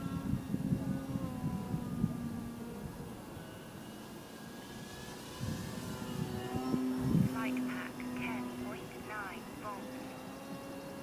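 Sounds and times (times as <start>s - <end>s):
model plane motor drone: 0.0s - 11.0s.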